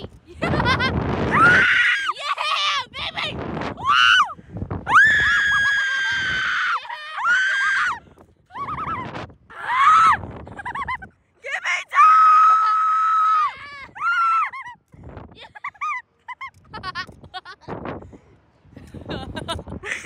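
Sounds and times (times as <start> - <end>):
people screaming and shrieking: 1.3 - 2.9, 3.8 - 14.8.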